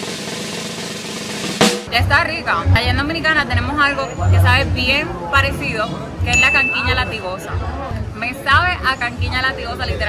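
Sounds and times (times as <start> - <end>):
snare drum roll: 0.0 - 1.9.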